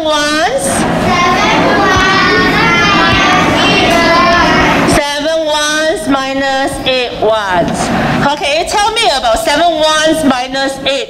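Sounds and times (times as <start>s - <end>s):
children reading aloud together: 0.0s - 10.9s.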